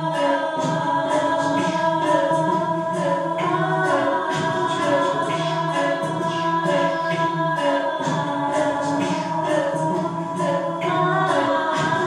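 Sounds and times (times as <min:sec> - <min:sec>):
layered a cappella vocals: 0:00.0 - 0:12.0.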